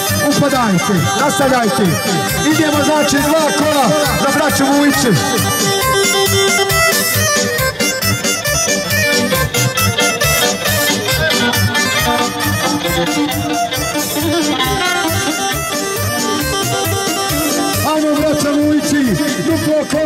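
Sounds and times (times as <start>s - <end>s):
folk band over loudspeakers: 0.0s - 20.0s.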